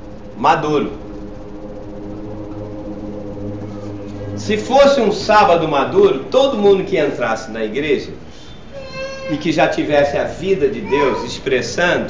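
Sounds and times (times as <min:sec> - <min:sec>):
low hum of held tones: 0:00.0 - 0:12.0.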